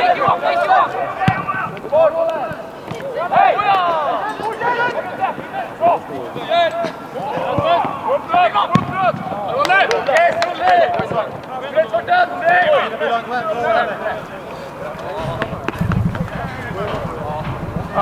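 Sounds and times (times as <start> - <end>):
players shouting: 0.0 - 18.0.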